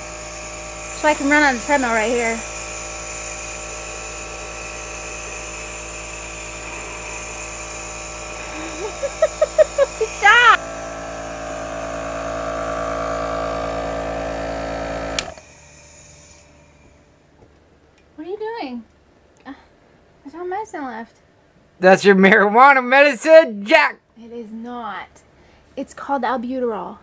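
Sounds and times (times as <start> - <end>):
nebulizer compressor motor hum: 0.0 - 17.6.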